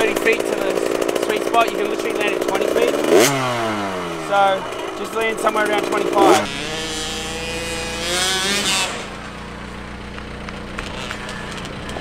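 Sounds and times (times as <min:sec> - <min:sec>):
distant dirt bike engine running: 0:00.0 - 0:12.0.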